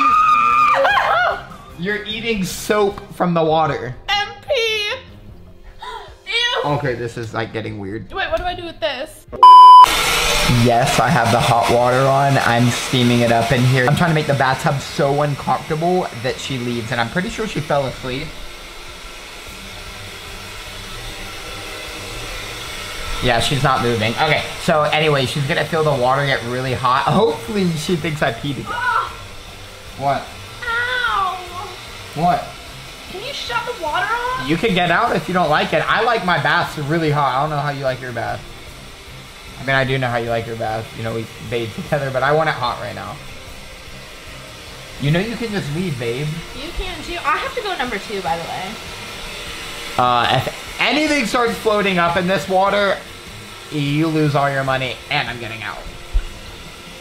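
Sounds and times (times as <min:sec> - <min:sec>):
water running into bathtub: 0:09.8 - 0:57.0.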